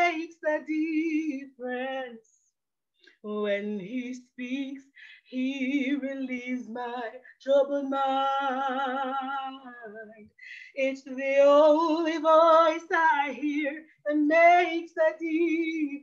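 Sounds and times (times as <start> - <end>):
woman singing unaccompanied: 0.0 - 2.2, 3.2 - 16.0.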